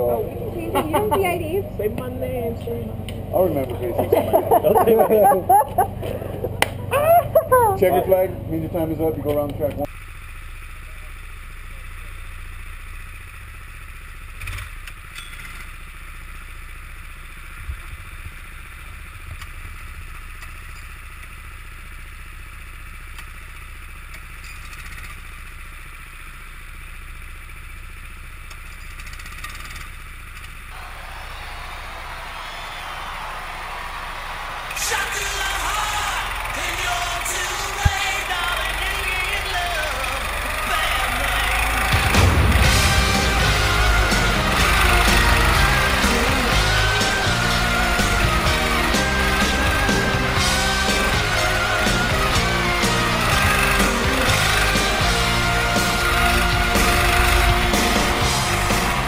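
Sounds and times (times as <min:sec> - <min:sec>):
go-kart engines idling: 0:00.0 - 0:59.0
loud music: 0:30.8 - 0:59.0.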